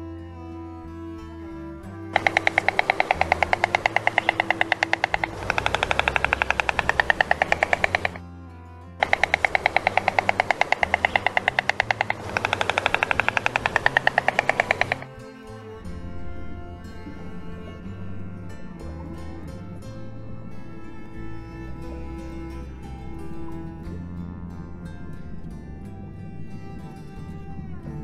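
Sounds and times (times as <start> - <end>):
soft background music: 0.0 - 28.0
woodpecker drumming: 2.1 - 8.2, 9.0 - 15.3.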